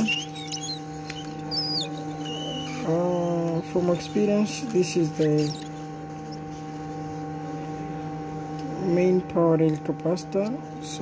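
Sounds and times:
hot-air rework station humming: 0:00.0 - 0:11.0.

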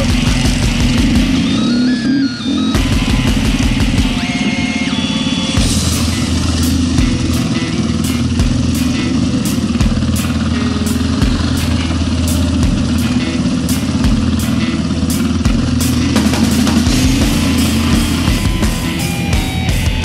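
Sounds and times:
dirt bike engine running: 0:00.0 - 0:20.0
music with steady beat: 0:00.0 - 0:20.0.

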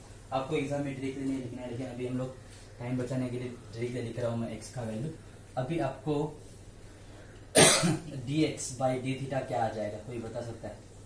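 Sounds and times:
man speaking: 0:00.3 - 0:06.4, 0:08.0 - 0:10.9
man coughing loudly: 0:07.5 - 0:08.1.

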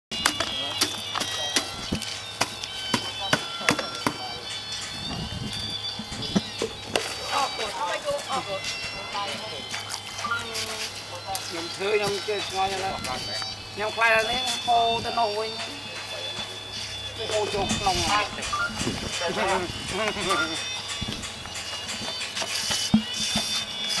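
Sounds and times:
bucket and trowel clicks and knocks: 0:00.1 - 0:02.1
steady high tones: 0:00.1 - 0:24.0
voices: 0:00.2 - 0:24.0
trowel scraping wet cement mix: 0:22.2 - 0:24.0.

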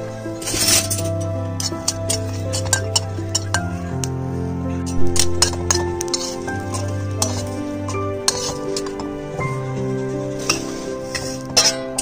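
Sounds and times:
background music: 0:00.0 - 0:12.0
metal spatula scraping metal pan: 0:00.4 - 0:04.0, 0:04.7 - 0:12.0.

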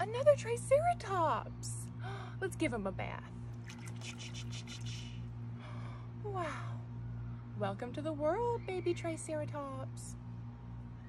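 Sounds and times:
steady low hum: 0:00.0 - 0:11.0
water splashing in plastic tub: 0:03.6 - 0:05.1.

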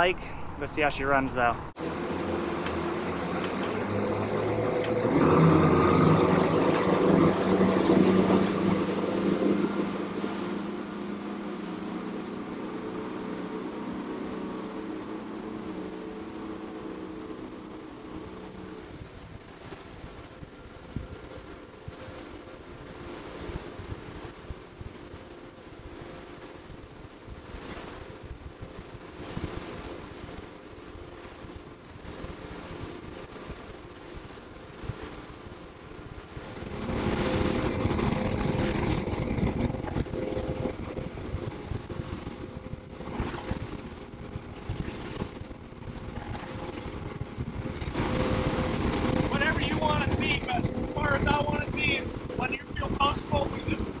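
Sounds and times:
boat engine drone: 0:00.0 - 0:54.0
rush of wind and water: 0:00.0 - 0:54.0.

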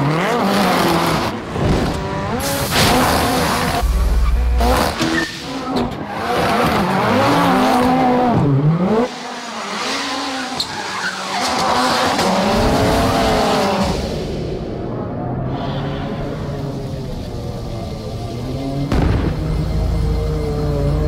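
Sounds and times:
tyres skidding and squealing: 0:00.0 - 0:14.2
rally car engine revving: 0:00.0 - 0:21.0
deep boom: 0:18.9 - 0:19.7.

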